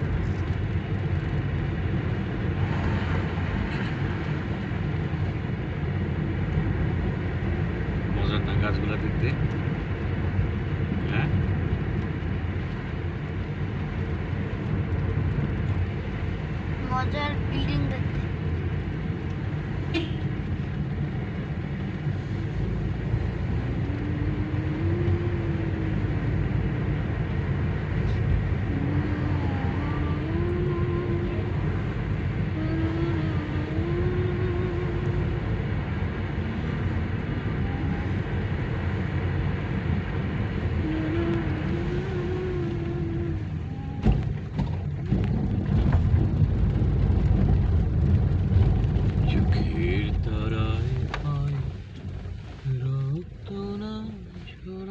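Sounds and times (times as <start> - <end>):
car engine and tyres rumbling: 0.0 - 54.9.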